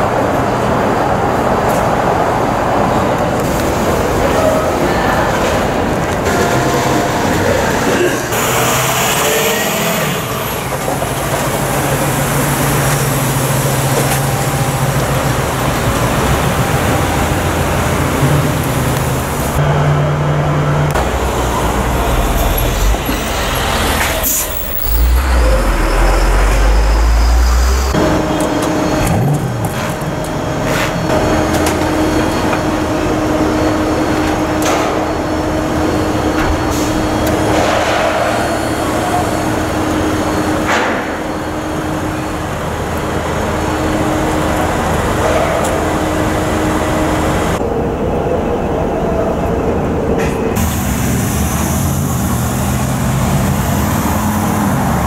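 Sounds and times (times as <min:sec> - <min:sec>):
cars and trucks passing: 0:00.0 - 0:55.0
steady engine hum: 0:00.0 - 0:55.0.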